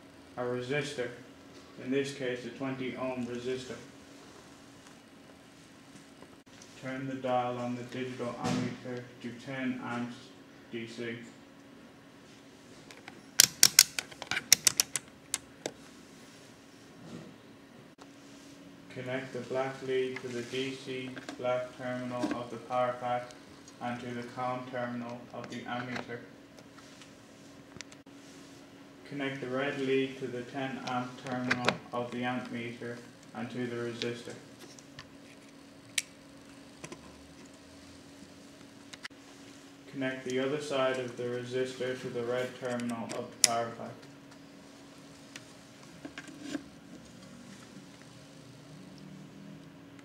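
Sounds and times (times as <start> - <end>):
faint steady hum: 0.0 - 50.0.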